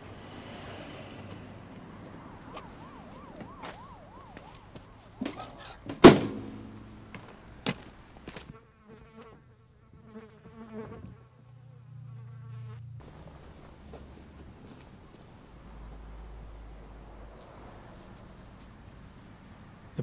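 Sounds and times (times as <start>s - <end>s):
trailer door banging shut: 5.2s - 7.3s.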